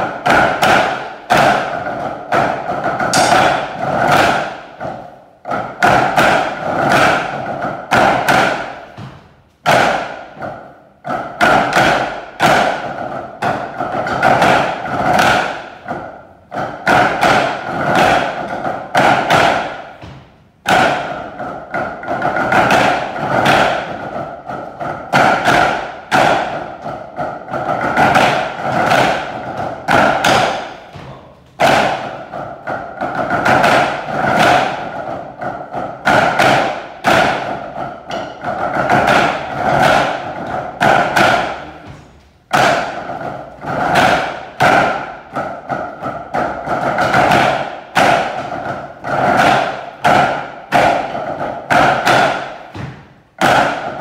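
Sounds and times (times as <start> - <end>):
drumsticks on practice pads: 0.0 - 54.0.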